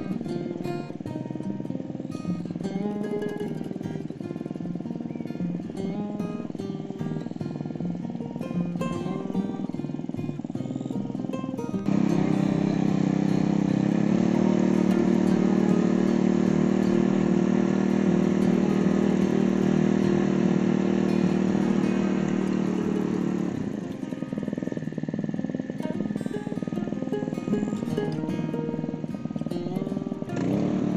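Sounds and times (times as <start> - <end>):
small petrol engine running: 0.0 - 30.9.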